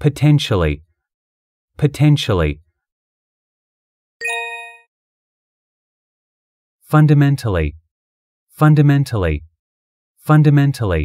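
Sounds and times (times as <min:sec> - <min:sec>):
bright electronic chime: 0:04.2 - 0:04.9.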